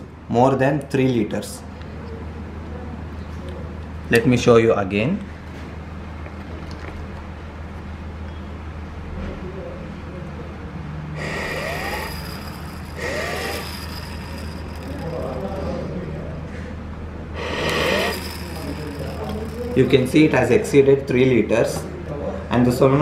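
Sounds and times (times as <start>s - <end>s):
steady low hum: 11.0s - 22.1s.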